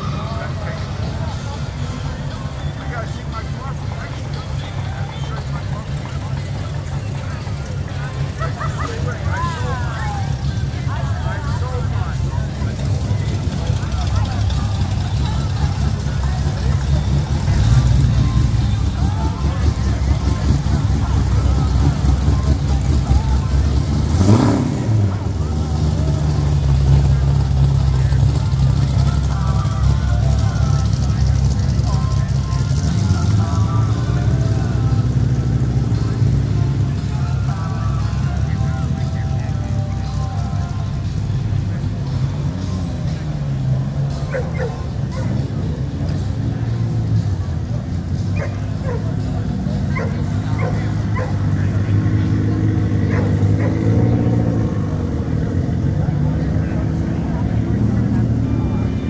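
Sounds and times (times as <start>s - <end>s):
chatter of voices: 0.0s - 59.0s
vehicle engine low rumble: 0.0s - 59.0s.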